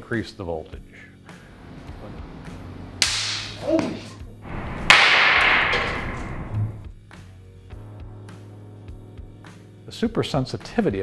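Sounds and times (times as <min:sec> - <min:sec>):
capacitor bursting crack: 0:04.5 - 0:06.8.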